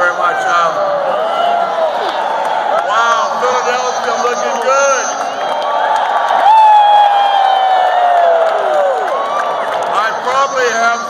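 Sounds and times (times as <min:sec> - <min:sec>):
crowd cheering: 0:00.0 - 0:11.0
man shouting into microphone: 0:02.9 - 0:05.2.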